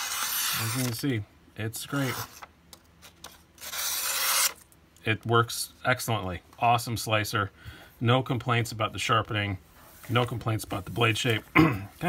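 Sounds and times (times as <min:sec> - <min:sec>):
knife slicing through paper: 0:00.0 - 0:01.1, 0:03.6 - 0:04.6.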